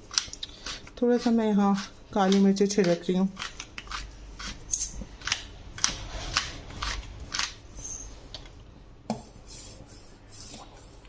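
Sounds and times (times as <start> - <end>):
pepper mill grinding: 0.0 - 7.6.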